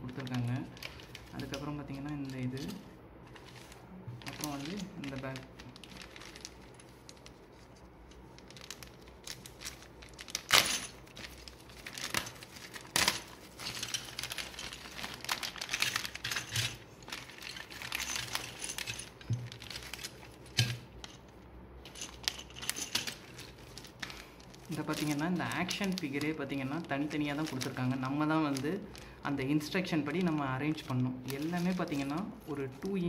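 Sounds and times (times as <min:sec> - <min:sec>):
plastic bag crinkling: 0:00.0 - 0:33.0.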